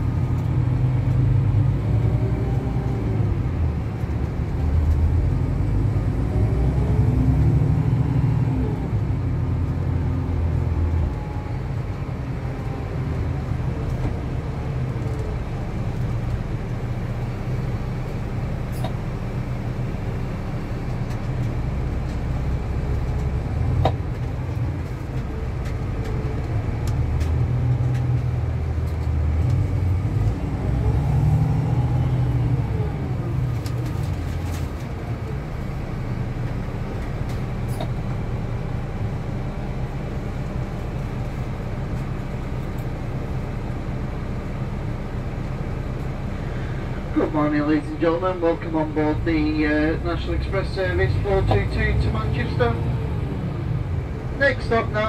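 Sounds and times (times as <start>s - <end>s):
coach diesel engine rumble: 0.0s - 55.0s.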